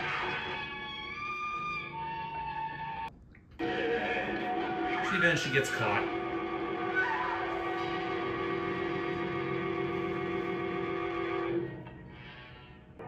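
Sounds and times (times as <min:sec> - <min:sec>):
loud sustained horror chord: 0:03.6 - 0:11.7.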